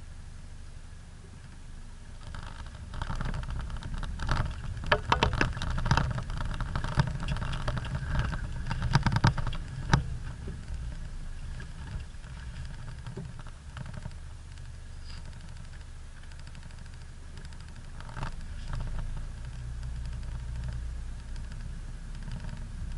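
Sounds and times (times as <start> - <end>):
vehicle engine running low: 0.0 - 22.9
vehicle body knocks and rattles: 2.2 - 20.8.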